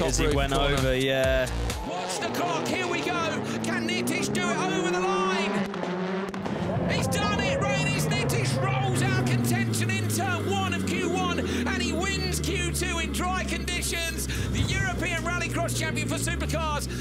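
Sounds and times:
racing car engine: 0.0 - 17.0.

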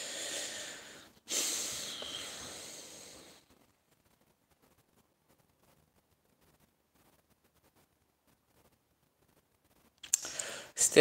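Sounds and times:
man breathing heavily through nose: 0.0 - 3.5.

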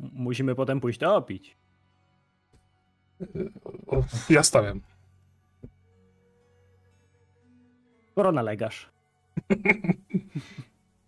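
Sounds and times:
man chuckling: 3.2 - 4.4, 9.4 - 10.7.

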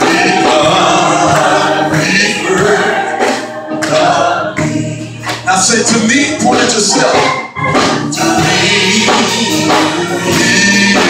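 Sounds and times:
group singing gospel: 0.0 - 11.0.

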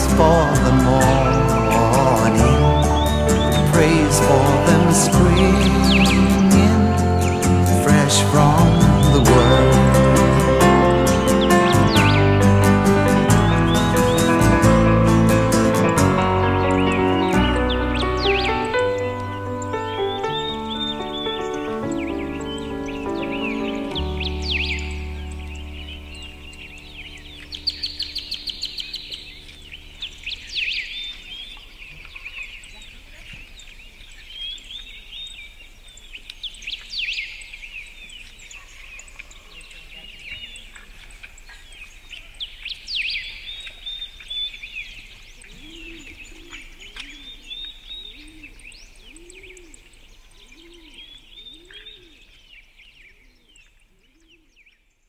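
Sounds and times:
lower bird call: 0.0 - 33.0, 43.1 - 52.4
small birds chirping and trilling: 0.0 - 55.0.

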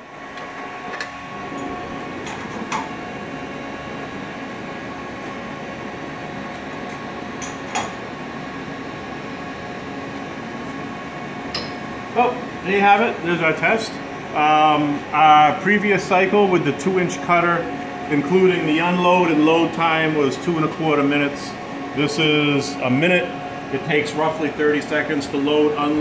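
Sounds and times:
milling machine humming: 0.0 - 26.0.

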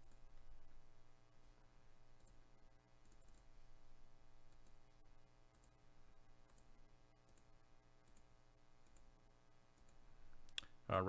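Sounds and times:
computer mouse clicks: 0.0 - 0.3, 2.1 - 2.4, 3.0 - 3.5, 4.4 - 4.8, 5.5 - 5.8, 6.4 - 9.1, 9.8 - 10.8
low steady hum: 0.0 - 11.0.

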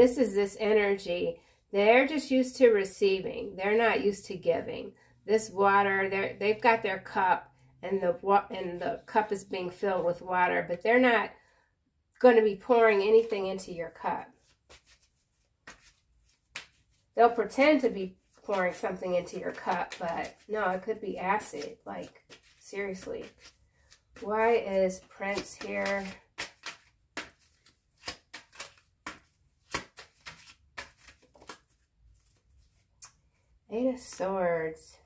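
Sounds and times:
cards being shuffled: 14.4 - 17.1, 18.2 - 33.2.

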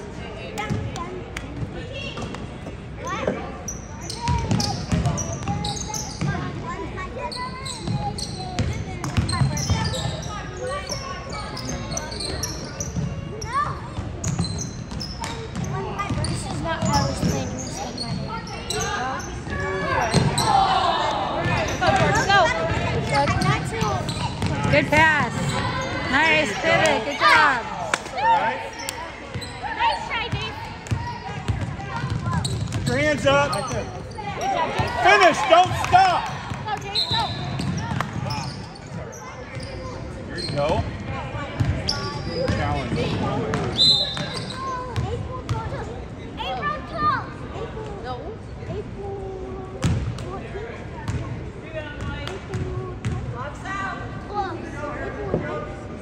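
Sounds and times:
people shouting in a gymnasium: 0.0 - 56.0.

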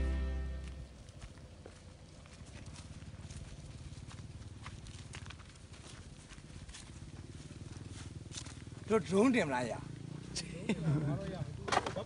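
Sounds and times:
footsteps on dirt path: 0.0 - 12.0.

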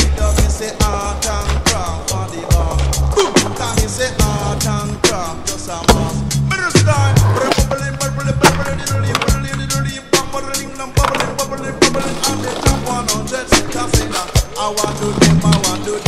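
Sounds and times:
music with drums and bass: 0.0 - 16.0
skateboard clacking: 0.0 - 16.0
skateboard wheels rolling on concrete: 0.0 - 16.0.

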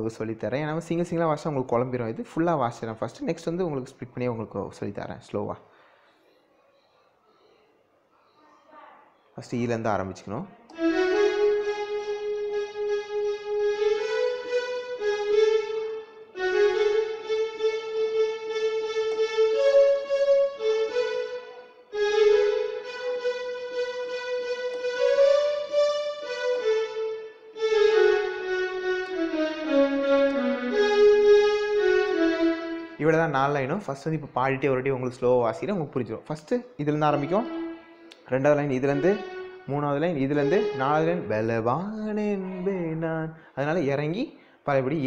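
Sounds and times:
electronic keyboard melody: 10.7 - 34.3, 36.8 - 43.1.

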